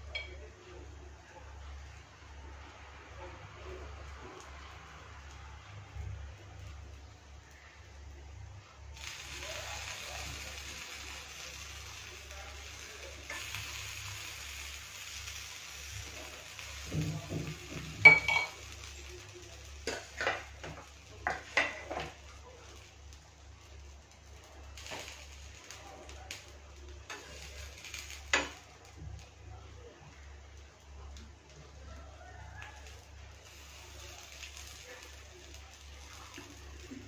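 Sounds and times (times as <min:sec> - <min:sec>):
flatbread sizzling on a griddle: 0:00.0 - 0:37.0.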